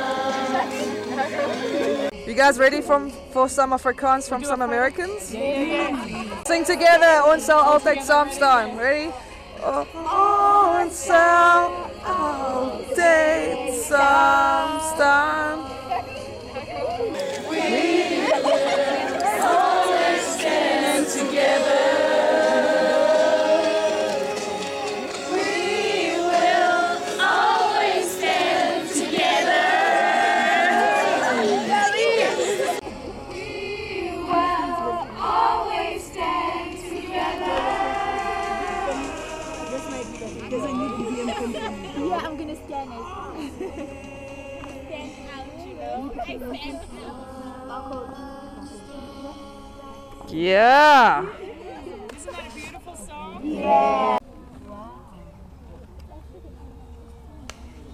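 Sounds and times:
choir singing: 0.0 - 3.3, 9.6 - 50.5.

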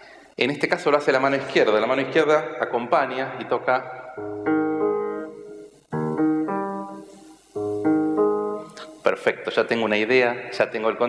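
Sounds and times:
piano broken chords: 3.9 - 9.5.

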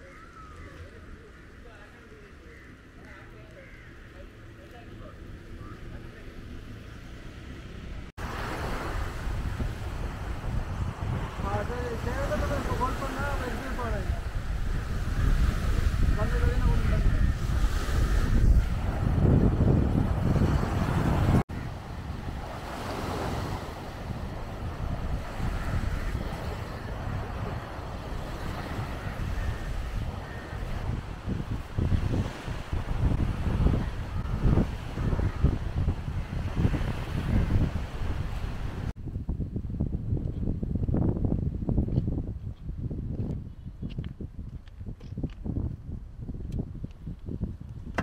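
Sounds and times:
wind buffeting microphone: 7.0 - 48.0
small waves washing onto shore: 8.2 - 38.9.

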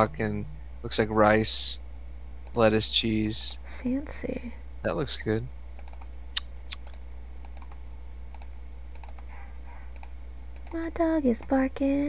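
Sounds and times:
steady low hum: 0.0 - 12.0
keyboard and mouse clicks: 5.8 - 6.1, 6.7 - 9.3, 9.9 - 10.8
muffled dog barking: 9.3 - 10.0.

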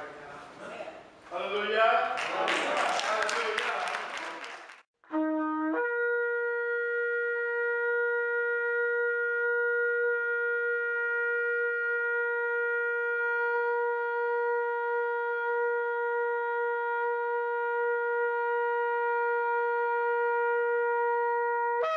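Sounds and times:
ram's horn long held note: 5.1 - 21.9.

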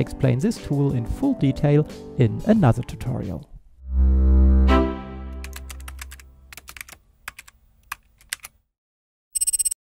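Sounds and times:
keyboard typing clicks: 5.4 - 8.5, 9.4 - 9.8.

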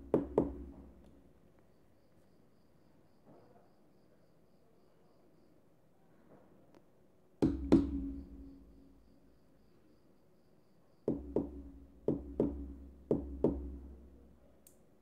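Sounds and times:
fingertip knocks on speaker cone: 7.4 - 8.4.

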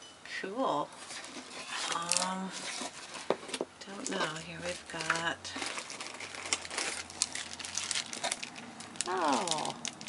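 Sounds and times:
plastic wrapping crinkling: 0.9 - 10.0.

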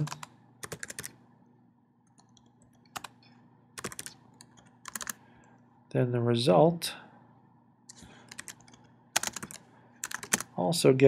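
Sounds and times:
computer keyboard typing: 0.0 - 1.2, 2.1 - 3.2, 3.8 - 5.2, 7.9 - 10.6.

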